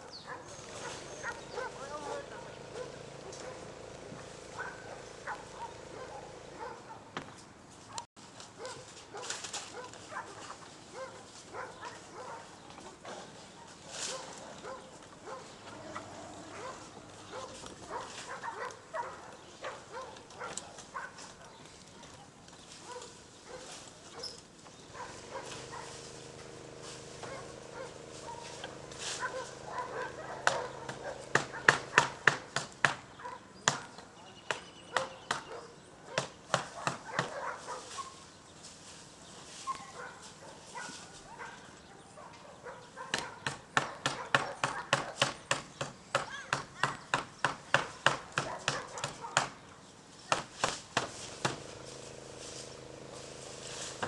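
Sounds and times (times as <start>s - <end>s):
dog barking: 0.0s - 3.7s, 4.6s - 7.1s, 7.9s - 12.5s, 13.2s - 21.6s, 22.8s - 26.0s, 27.2s - 32.3s, 33.2s - 34.0s, 34.9s - 38.2s, 39.7s - 45.2s, 48.4s - 49.6s.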